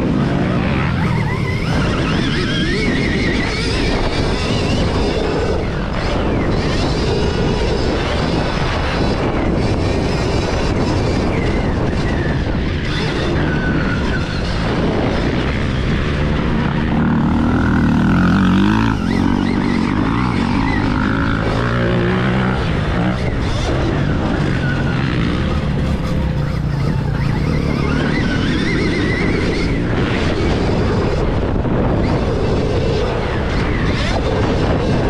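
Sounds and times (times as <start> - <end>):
wind and tyres on dirt: 0.0 - 35.0.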